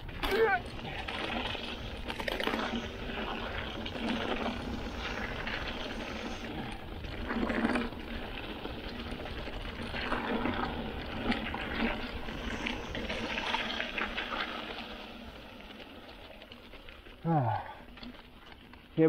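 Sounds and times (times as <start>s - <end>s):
bike rattle: 0.0s - 19.0s
bike tyre noise: 0.0s - 19.0s.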